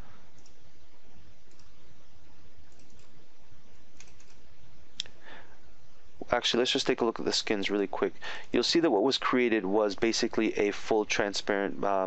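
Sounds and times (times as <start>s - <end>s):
room noise hum and hiss: 0.0s - 12.0s
computer mouse clicks: 0.3s - 0.6s, 1.4s - 1.8s, 2.6s - 3.2s, 4.0s - 4.4s.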